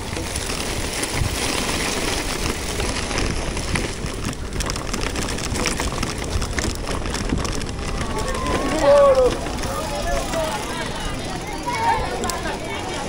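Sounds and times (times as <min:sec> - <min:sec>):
bicycle tyres rolling on gravel: 0:00.0 - 0:13.0
wind rumbling on microphone: 0:00.0 - 0:13.0.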